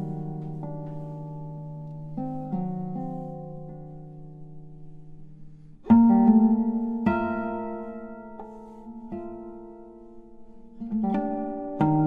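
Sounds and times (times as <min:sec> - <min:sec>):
classical guitar plucked notes: 0:00.0 - 0:12.0.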